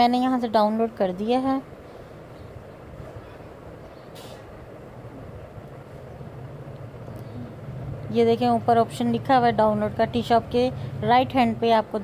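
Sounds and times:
low hum: 0.0s - 11.7s
low background rumble: 0.0s - 12.0s
short hiss: 3.9s - 4.6s.

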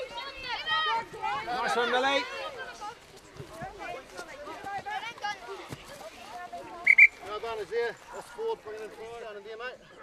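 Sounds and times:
children and adults shouting: 0.0s - 2.8s
referee's whistle blast: 6.8s - 7.2s.

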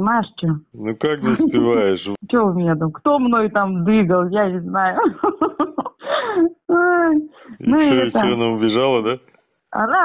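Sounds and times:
woman speaking: 0.0s - 0.6s, 1.2s - 8.4s, 9.8s - 10.0s
woman making wordless vocal sounds: 1.2s - 1.9s, 6.5s - 8.4s.

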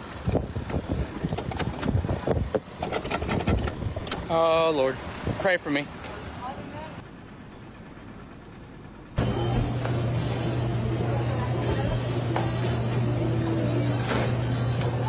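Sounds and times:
machine running with low hum: 7.0s - 15.0s.

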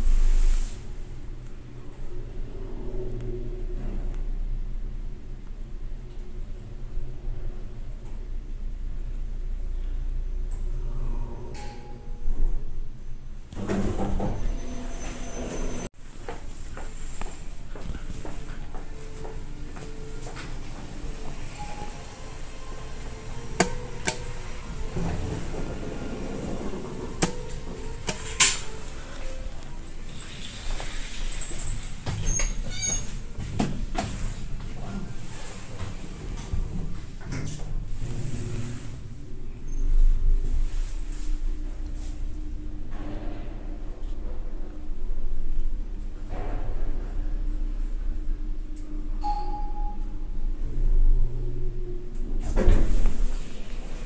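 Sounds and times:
steady background hum: 0.0s - 54.0s
elevator doors sliding open: 11.2s - 16.0s, 17.5s - 44.6s, 49.2s - 54.0s
elevator chime: 18.5s - 30.2s, 49.1s - 51.2s.

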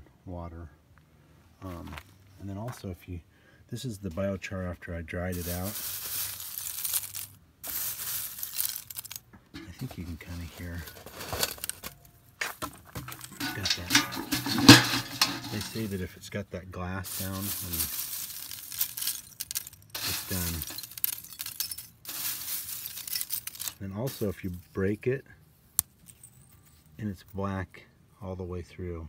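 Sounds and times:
wood chips rustling and clinking: 5.2s - 16.3s, 16.9s - 25.2s, 25.8s - 27.2s.

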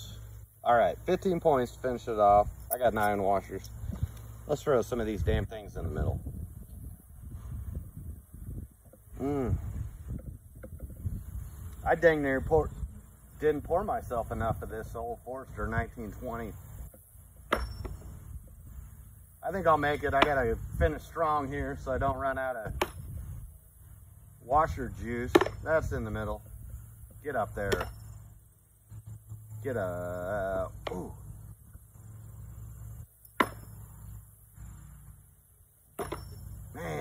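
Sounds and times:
low steady hum: 0.0s - 37.0s.

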